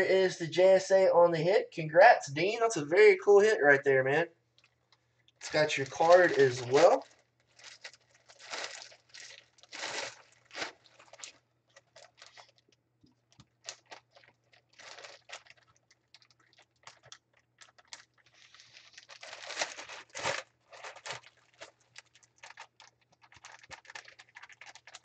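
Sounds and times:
packaging crinkling and rustling: 4.6s - 25.0s.

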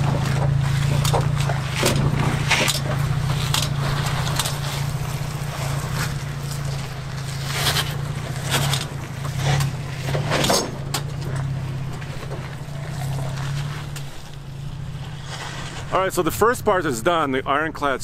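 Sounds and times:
truck engine running at low revs: 0.0s - 18.0s
tyres crunching on rock and gravel: 0.0s - 18.0s.

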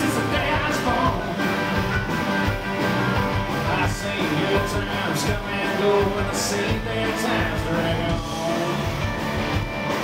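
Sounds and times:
live rock band playing: 0.0s - 10.0s.

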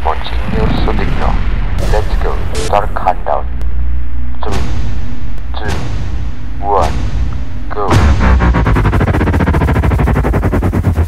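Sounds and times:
heavy bass: 0.0s - 11.0s
electronic glitch stutter: 0.8s - 3.2s.

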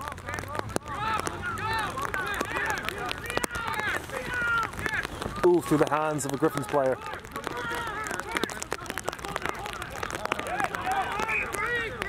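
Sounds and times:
players shouting: 0.0s - 12.0s.

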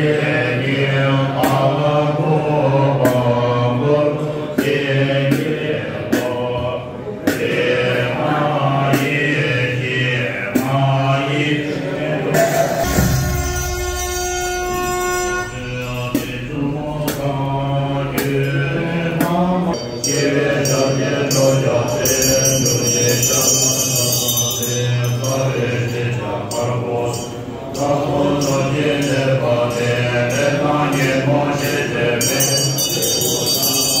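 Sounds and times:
people chanting in low voices: 0.0s - 34.0s
hand bell ringing: 12.8s - 16.7s, 19.7s - 34.0s.

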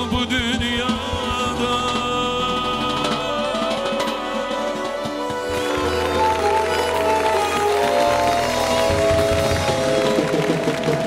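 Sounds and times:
accordion: 0.0s - 11.0s
live band music: 0.0s - 11.0s.

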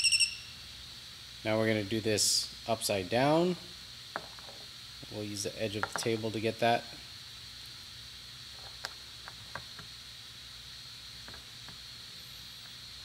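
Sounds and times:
faint high-pitched tone: 0.0s - 0.6s
steady hiss: 0.0s - 13.0s.

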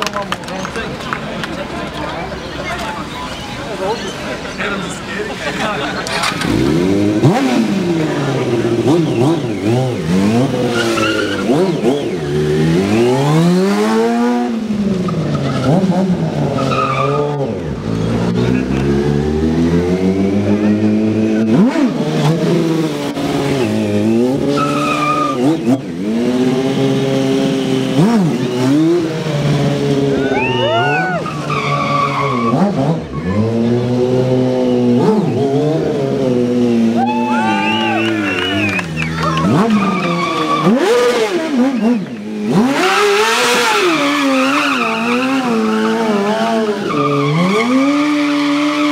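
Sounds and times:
motorcycle engine revving: 5.8s - 30.4s, 31.2s - 48.9s
tyre squeals on asphalt: 8.9s - 13.4s, 16.4s - 18.3s, 23.5s - 25.8s, 30.1s - 35.4s, 37.0s - 48.9s.

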